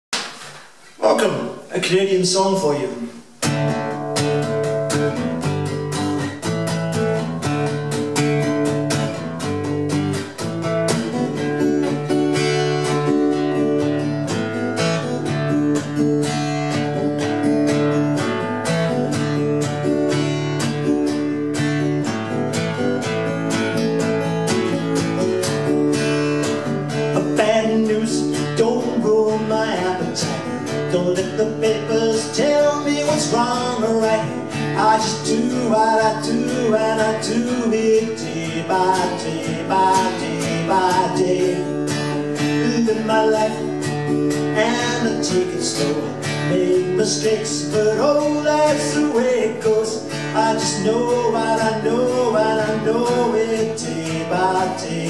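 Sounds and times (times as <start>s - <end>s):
acoustic guitar strummed: 0.2s - 55.0s.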